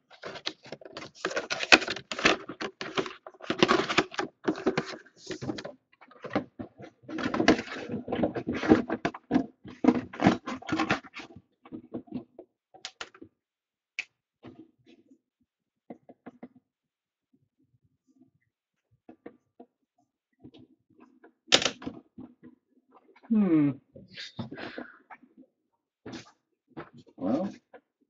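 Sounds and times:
cardboard and plastic packaging rustling: 0.0 - 12.3.

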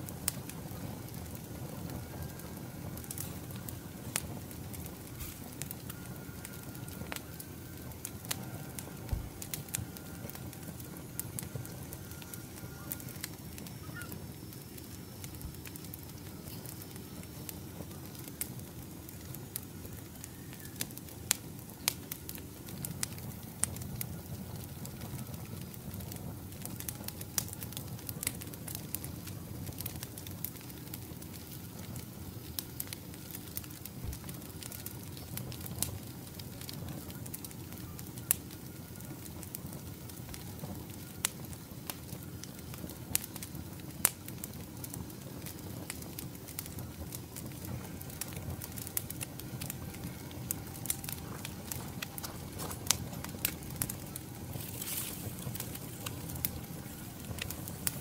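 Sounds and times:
campfire crackling and popping: 0.0 - 58.0
low rush of flame: 0.0 - 58.0.

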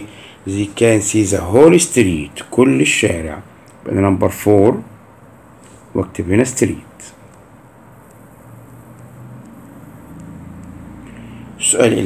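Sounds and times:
low background hum and rumble: 0.0 - 12.0
faint ticks: 8.9 - 11.2.

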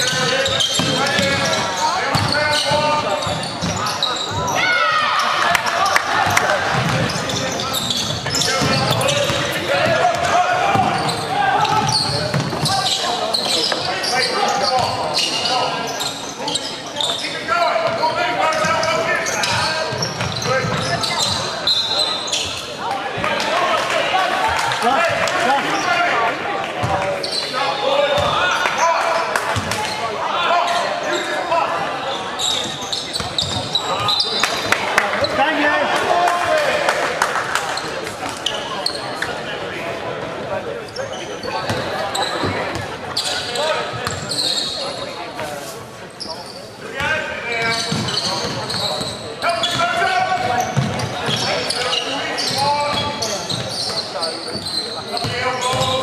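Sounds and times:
indistinct shouting and chatter: 0.0 - 56.0.

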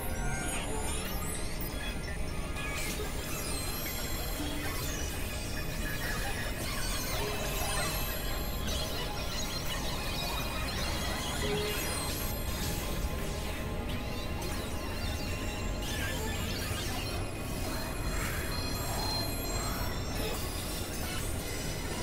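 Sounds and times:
harsh electronic noise: 0.0 - 22.0.

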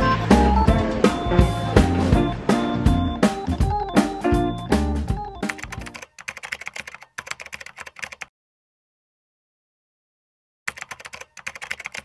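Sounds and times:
background music with guitar and drums: 0.0 - 6.0
computer keyboard typing clicks: 5.4 - 8.3, 10.7 - 12.0.

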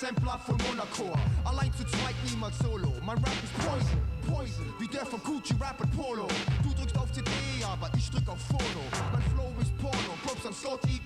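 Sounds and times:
drum beat: 0.0 - 4.6, 5.4 - 11.0
person rapping: 0.0 - 11.0
deep bass line: 1.2 - 4.8, 6.5 - 10.1.

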